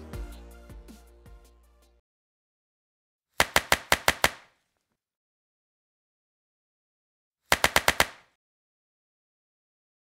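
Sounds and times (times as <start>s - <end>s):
run of sharp clicks: 3.4s - 4.5s, 7.5s - 8.3s.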